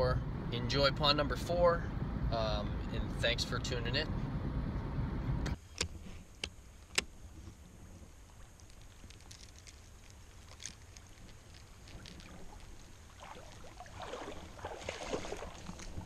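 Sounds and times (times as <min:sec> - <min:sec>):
car cabin road noise: 0:00.0 - 0:16.0.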